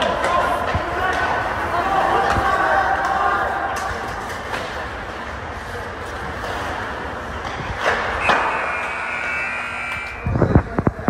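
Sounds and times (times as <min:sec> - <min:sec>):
crowd noise: 0:00.0 - 0:11.0
arena horn: 0:08.2 - 0:10.2.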